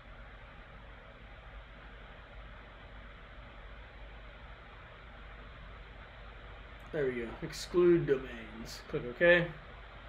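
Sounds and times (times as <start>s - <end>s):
faint low hum: 0.0s - 10.0s
low background hiss: 0.0s - 10.0s.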